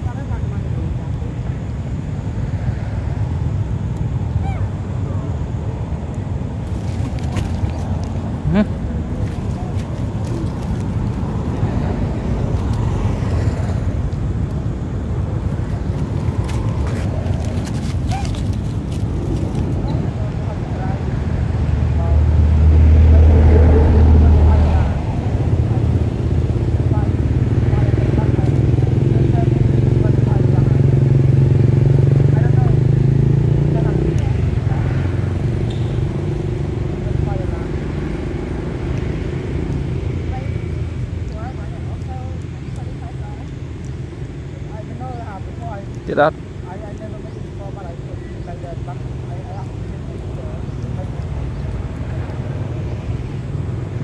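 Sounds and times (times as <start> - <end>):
vehicle engine running: 0.0 - 54.0.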